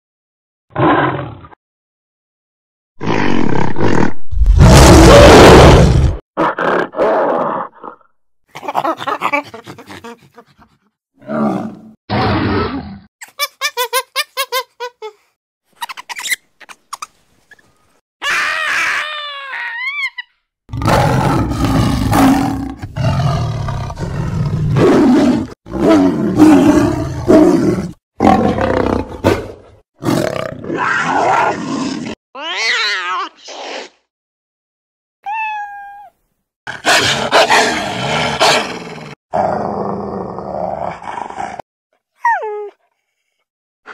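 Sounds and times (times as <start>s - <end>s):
ape roaring and snarling: 3.0s - 8.0s, 11.2s - 13.1s, 20.7s - 32.2s, 36.7s - 41.6s
gorilla roaring: 3.0s - 8.0s, 11.2s - 13.1s, 20.7s - 32.2s, 36.7s - 41.6s.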